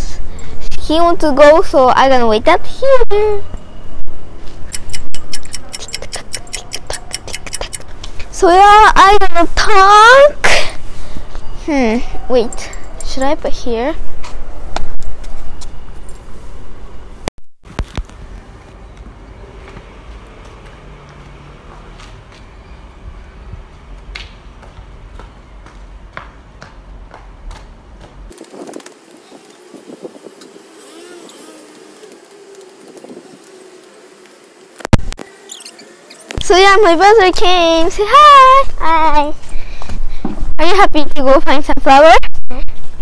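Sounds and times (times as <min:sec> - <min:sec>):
faint street ambience: 0:00.0 - 0:43.0.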